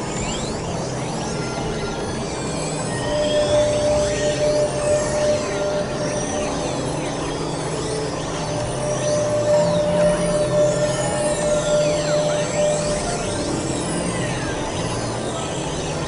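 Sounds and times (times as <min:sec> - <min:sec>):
noisy electronic drone: 0:00.0 - 0:16.0.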